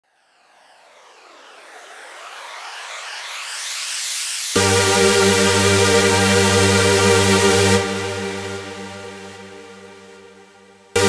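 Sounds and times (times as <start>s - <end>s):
synthesized noise riser: 0.2s - 11.0s.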